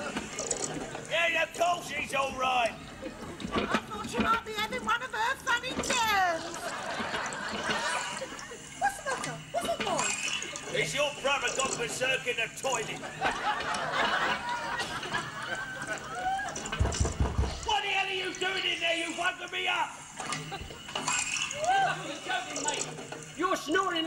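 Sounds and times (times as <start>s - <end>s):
toilet cistern running: 0.0s - 24.0s.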